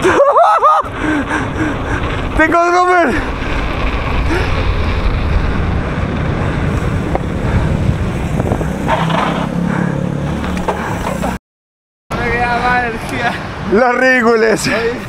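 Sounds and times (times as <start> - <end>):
wind buffeting microphone: 0.0 - 11.2
bike tyres rolling on pavement: 0.0 - 11.4, 12.2 - 15.0.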